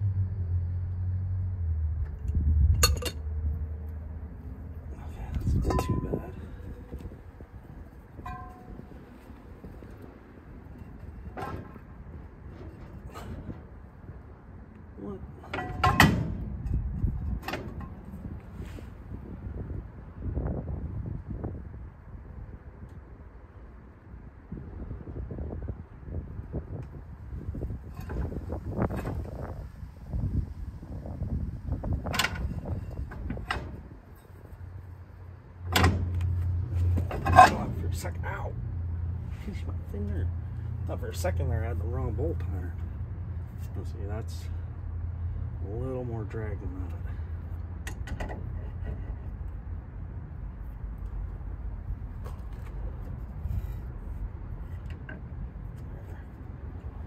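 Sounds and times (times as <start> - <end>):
low hum: 0.0 - 25.9
metal knocks and scrapes: 5.4 - 7.2, 8.1 - 10.0, 10.6 - 14.1, 15.4 - 18.9, 27.8 - 29.7, 31.9 - 34.7, 35.6 - 38.4, 52.0 - 57.0.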